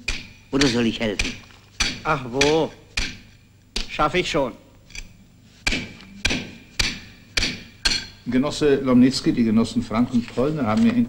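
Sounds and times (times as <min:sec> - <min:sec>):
hammer striking brick: 0:00.0 - 0:04.0, 0:05.6 - 0:08.1.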